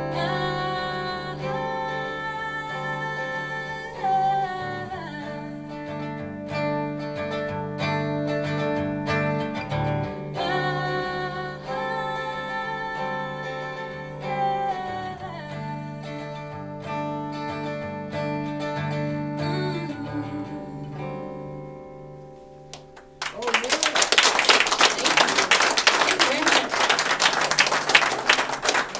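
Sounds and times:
acoustic guitar chords: 0.0s - 23.4s
audience applause: 23.0s - 28.9s.

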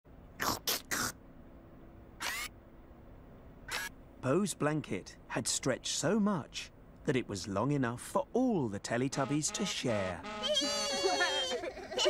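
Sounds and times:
faint steady hum: 0.1s - 12.0s.

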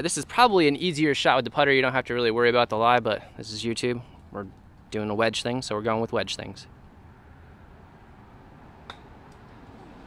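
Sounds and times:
faint outdoor background: 0.0s - 10.0s
golf club striking ball: 8.8s - 9.5s.

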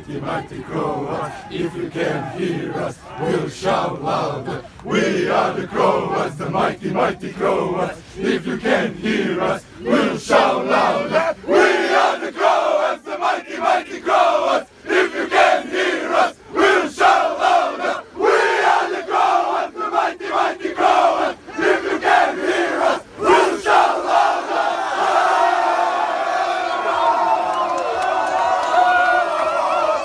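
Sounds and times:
men chanting in unison: 0.0s - 25.9s
crowd cheering and shouting: 23.4s - 30.0s.

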